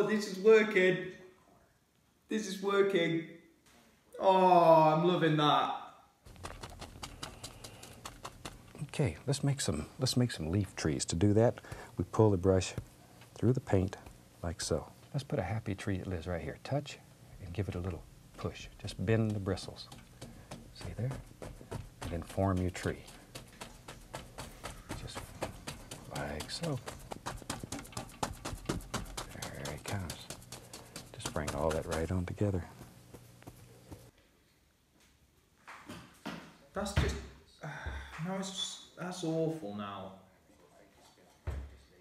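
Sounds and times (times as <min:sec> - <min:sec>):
paintbrush tapping on canvas: 0:18.8 - 0:32.6.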